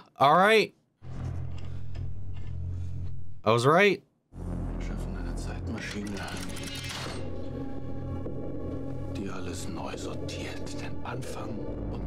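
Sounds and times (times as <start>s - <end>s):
low music drone: 4.3s - 12.0s.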